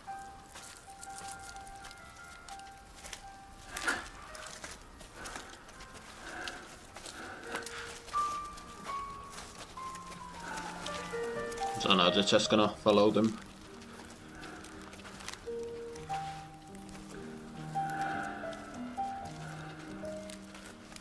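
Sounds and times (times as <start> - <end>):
quiet film score: 0.0 - 21.0.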